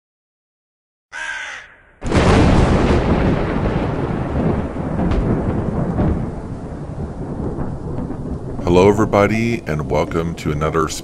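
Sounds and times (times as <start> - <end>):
crow cawing: 1.1 - 2.0.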